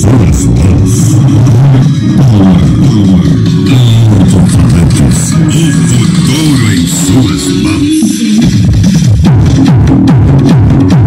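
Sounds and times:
loud bass-heavy music from speakers: 0.0 - 11.0.

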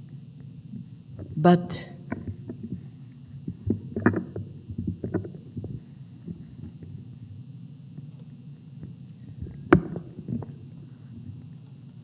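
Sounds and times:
microphone handling thumps: 2.1 - 7.4, 9.3 - 11.4.

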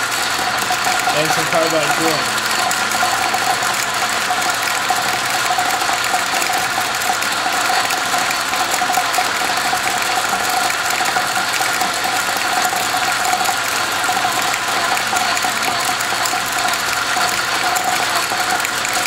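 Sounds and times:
metal lathe running: 0.0 - 19.0.

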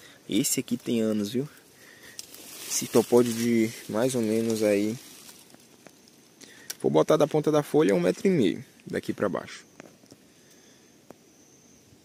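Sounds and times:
man speaking: 0.3 - 1.6, 2.6 - 5.1, 6.7 - 9.7.

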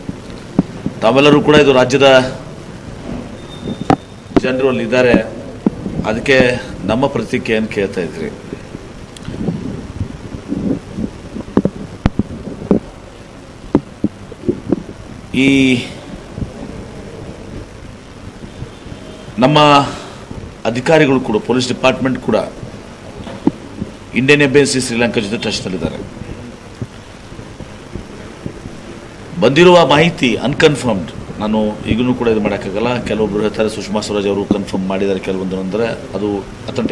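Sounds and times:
soft low thumps: 0.0 - 1.6, 5.1 - 6.6, 8.4 - 15.3, 16.0 - 19.4, 22.5 - 24.1, 26.0 - 29.3
microphone handling rumble: 0.0 - 1.8, 2.4 - 19.4, 20.0 - 20.6, 22.4 - 24.1, 25.8 - 32.2
faint muffled sounds: 0.0 - 36.9
sharp clicks and knocks: 13.7 - 14.9, 23.2 - 24.0.

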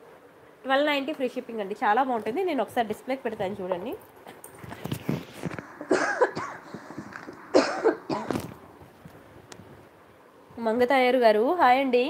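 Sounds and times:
person coughing: 5.8 - 6.9, 7.5 - 8.5.

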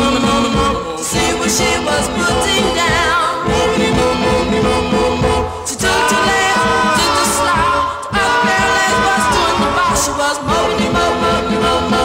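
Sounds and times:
doo-wop group singing in harmony: 0.0 - 12.0.

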